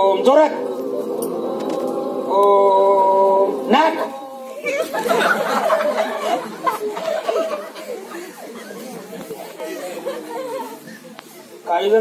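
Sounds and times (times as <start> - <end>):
children chattering: 0.0 - 11.9.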